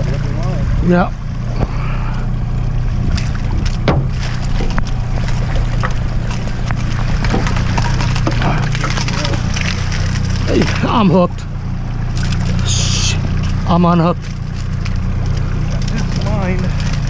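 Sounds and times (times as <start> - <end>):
outboard motor running: 0.0 - 17.0
water churning: 0.0 - 17.0
sharp knocks: 3.1 - 9.8.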